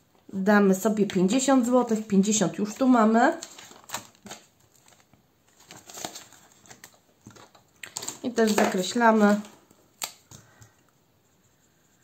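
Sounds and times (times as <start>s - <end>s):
plastic pocket crinkling: 3.3s - 10.4s.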